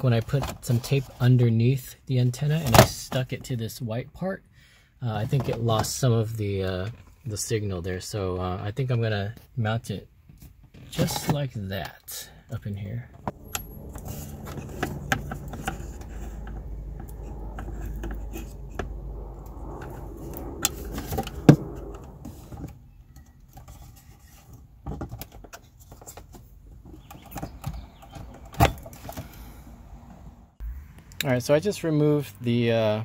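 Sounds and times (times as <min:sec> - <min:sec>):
low rumble: 0:12.8 - 0:23.5.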